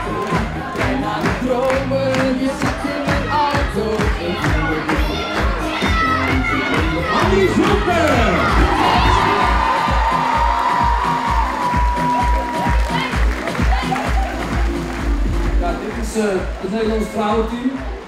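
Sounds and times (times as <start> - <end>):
crowd cheering and whooping: 0.0 - 1.1, 2.8 - 15.3
dance music with kick drum: 0.0 - 18.0.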